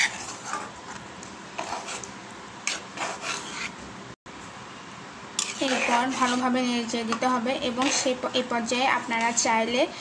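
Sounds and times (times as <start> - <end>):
spatula scraping metal pot: 0.0 - 0.8, 1.6 - 3.8, 5.4 - 6.7, 7.6 - 8.4.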